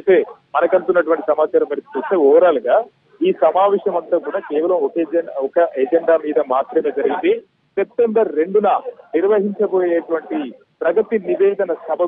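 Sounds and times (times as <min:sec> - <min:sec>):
person speaking over telephone: 0:00.0 - 0:12.0.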